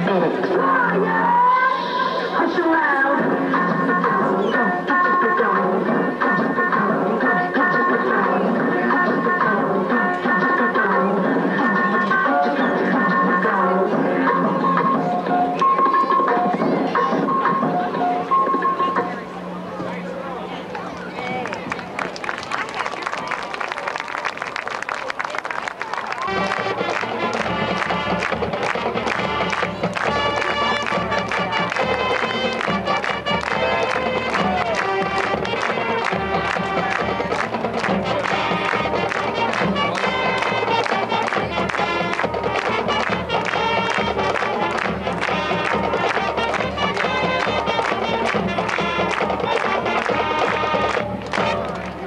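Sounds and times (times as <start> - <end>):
marching band playing: 26.1 - 52.0.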